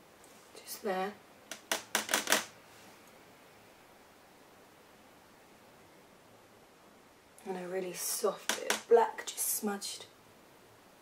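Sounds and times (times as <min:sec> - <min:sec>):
make-up cases clicking and tapping: 0:01.5 - 0:02.5.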